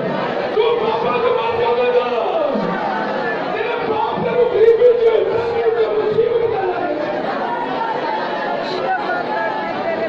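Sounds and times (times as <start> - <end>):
women praying aloud together: 0.0 - 10.0.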